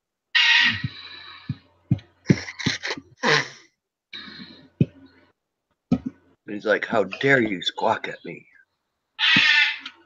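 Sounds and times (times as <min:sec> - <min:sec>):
pet bird squawking: 0:00.4 - 0:01.2, 0:09.2 - 0:10.0.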